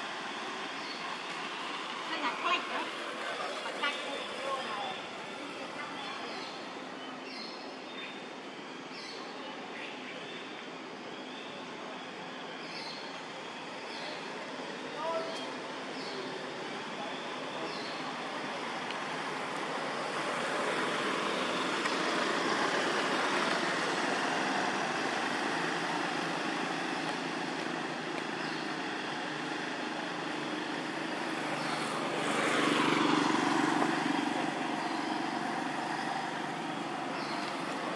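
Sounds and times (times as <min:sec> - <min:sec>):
road traffic noise: 0:00.0 - 0:37.9
vehicle passing close: 0:16.5 - 0:37.9.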